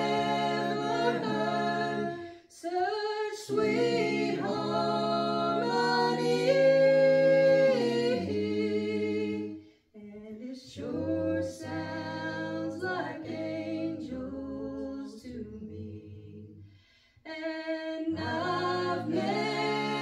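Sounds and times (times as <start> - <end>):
group singing a hymn a cappella: 0.0 - 20.0.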